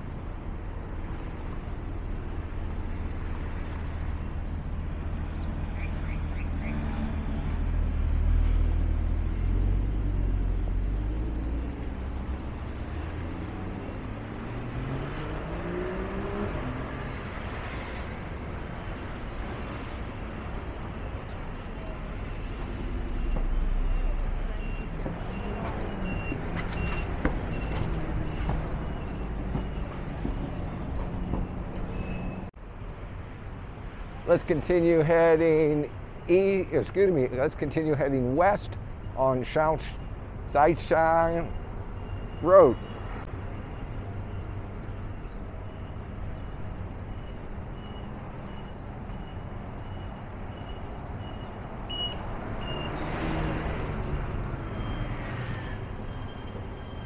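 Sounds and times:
passing cars rumbling: 0.0 - 57.0
vehicle engine accelerating: 6.8 - 17.4.

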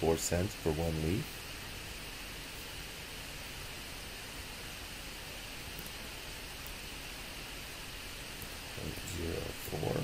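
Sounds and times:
microphone hiss: 0.0 - 10.0.

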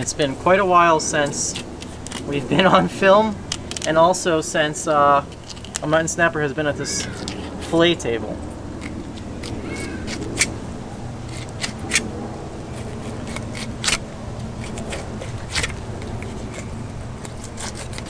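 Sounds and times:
low background hum: 0.0 - 18.0
knife slicing fish: 12.7 - 18.0
blade scraping on plastic table: 14.6 - 18.0.

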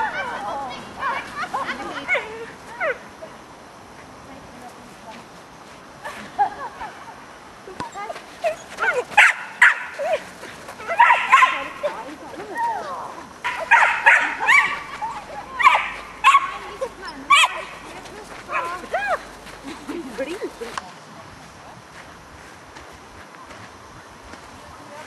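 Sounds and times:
dog barking and yipping: 8.4 - 12.0, 13.4 - 19.2.

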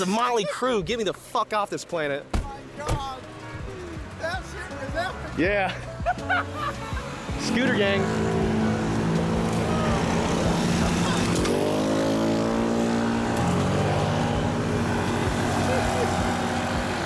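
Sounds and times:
vehicle engines running: 0.0 - 17.0.

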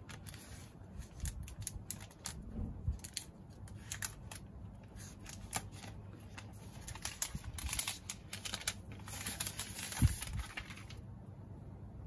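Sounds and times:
plastic wrap crackling: 0.0 - 11.0.

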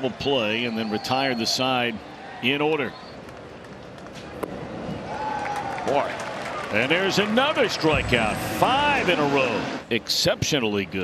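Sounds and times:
crowd cheering: 0.0 - 2.4, 4.6 - 9.9.

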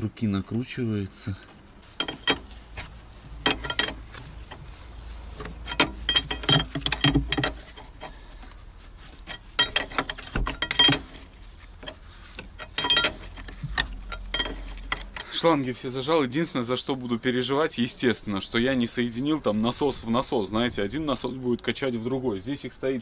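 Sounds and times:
metal wrench clicking: 2.0 - 4.6, 5.4 - 8.1, 9.2 - 15.4.

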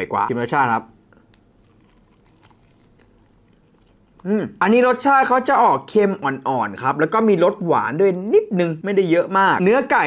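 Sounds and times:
person chewing: 1.2 - 4.3
man speaking: 4.2 - 10.0.

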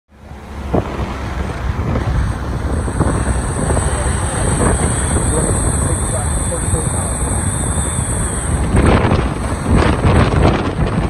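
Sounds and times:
car road rumble: 0.1 - 11.0
wind buffeting microphone: 0.3 - 11.0.

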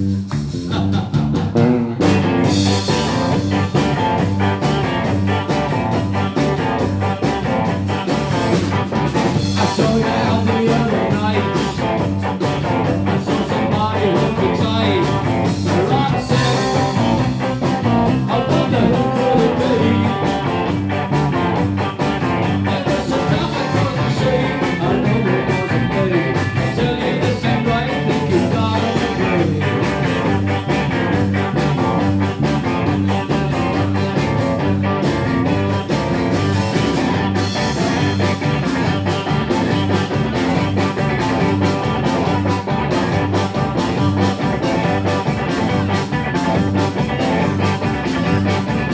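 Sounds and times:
bass guitar: 0.0 - 48.9
drums: 0.0 - 48.9
electric guitar: 0.0 - 48.9.

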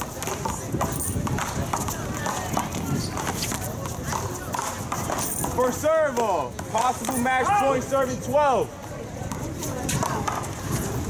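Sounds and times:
indistinct talk of people: 0.0 - 11.0.

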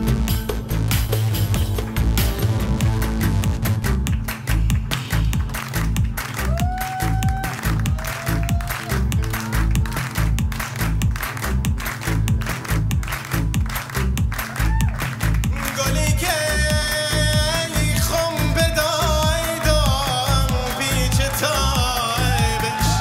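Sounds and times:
electronic folk band music: 0.0 - 23.0
hand claps: 0.8 - 23.0.

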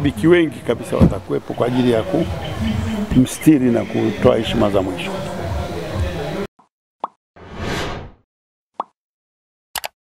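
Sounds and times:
person speaking: 0.0 - 6.5.

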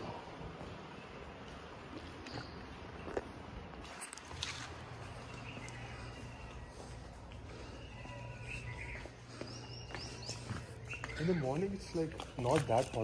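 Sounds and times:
steady low hum: 0.0 - 12.4.

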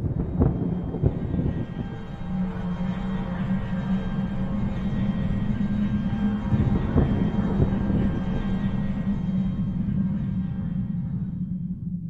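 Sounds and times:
eerie low drone music: 0.0 - 12.0
rumbling swell: 0.0 - 12.0.

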